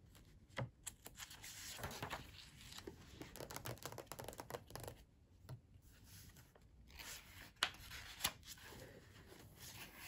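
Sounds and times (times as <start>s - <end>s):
paper rustling and tapping: 0.5s - 5.6s
textbook pages turning: 0.8s - 5.0s, 6.0s - 10.0s.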